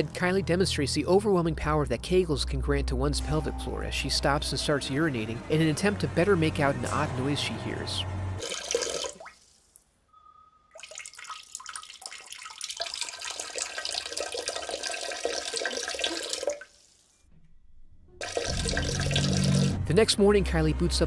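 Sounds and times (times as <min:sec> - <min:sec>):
urine trickling into toilet: 0:08.4 - 0:09.8, 0:10.7 - 0:17.2, 0:18.2 - 0:19.8.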